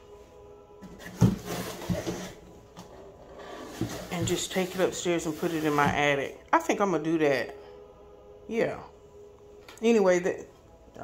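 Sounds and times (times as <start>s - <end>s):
cardboard and foam scraping: 1.0s - 2.5s, 3.1s - 6.1s.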